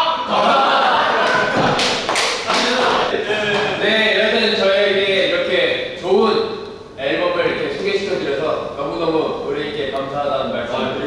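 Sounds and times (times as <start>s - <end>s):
young men laughing: 0.1s - 4.2s.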